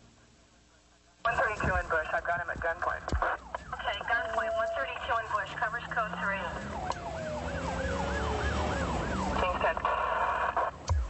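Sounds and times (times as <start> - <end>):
police siren yelping: 3.0 - 11.0
second siren tone winding down: 3.6 - 11.0.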